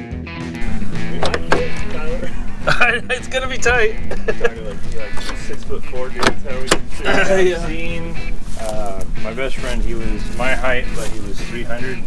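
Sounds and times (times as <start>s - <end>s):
car door handle clicks: 6.2s - 6.9s.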